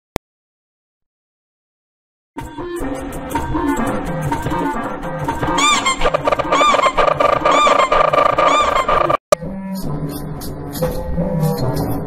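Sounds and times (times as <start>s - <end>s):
looped remix music: 2.7s - 9.2s
rising and falling tone: 5.7s - 9.2s.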